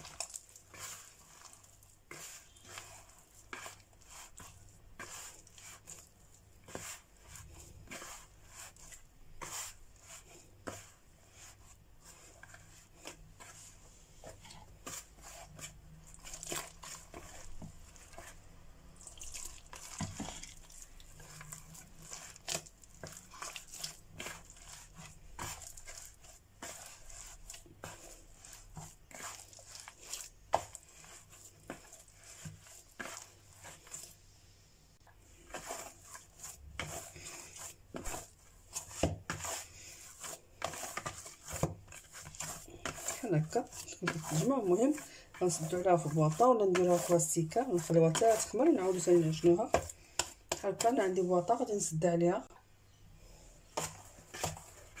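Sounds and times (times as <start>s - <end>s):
hands kneading bread dough: 0.0s - 55.0s.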